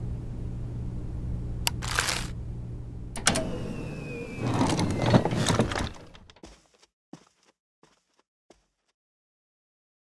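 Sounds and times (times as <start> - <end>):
low steady hum: 0.0 - 6.2
thin falling whistle: 3.5 - 5.4.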